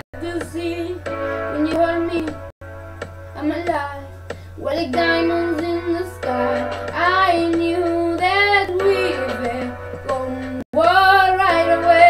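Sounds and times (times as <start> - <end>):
boy singing: 3.4 - 12.0.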